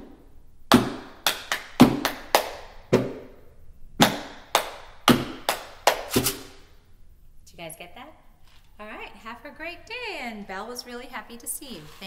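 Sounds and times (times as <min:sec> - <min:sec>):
hand claps: 0:00.7 - 0:03.3, 0:04.0 - 0:06.5
woman speaking: 0:07.4 - 0:12.0.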